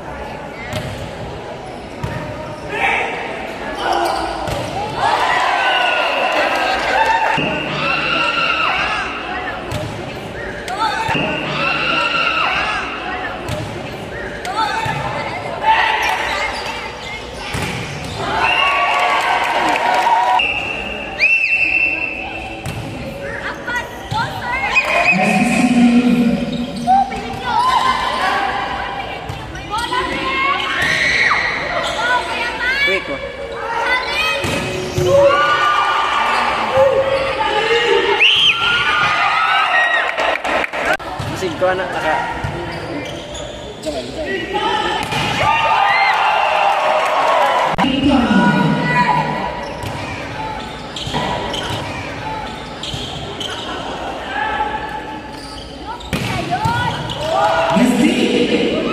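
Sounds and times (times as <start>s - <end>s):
players and spectators shouting: 2.6s - 9.6s, 24.4s - 29.0s, 33.6s - 41.0s
sneakers squeaking on court: 3.7s - 4.8s, 16.0s - 18.3s, 26.2s - 27.9s, 42.4s - 44.3s, 49.5s - 54.1s, 55.0s - 57.4s.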